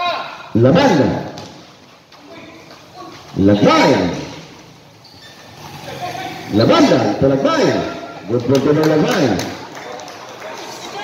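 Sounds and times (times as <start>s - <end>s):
man's commentary voice: 0.5s - 1.3s, 3.4s - 4.4s, 5.9s - 9.5s.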